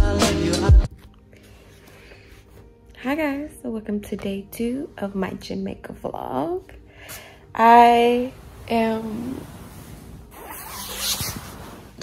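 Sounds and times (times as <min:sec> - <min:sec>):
bedding rustling: 0:08.0 - 0:12.0.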